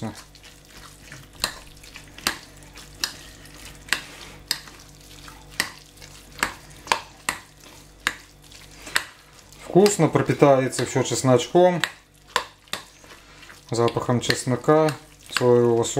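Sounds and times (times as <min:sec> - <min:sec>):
soft wet stirring: 0:00.0 - 0:15.9.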